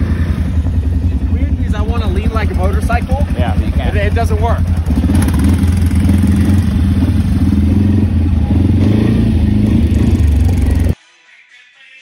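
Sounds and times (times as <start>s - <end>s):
quad bike engine roaring: 0.0s - 11.0s.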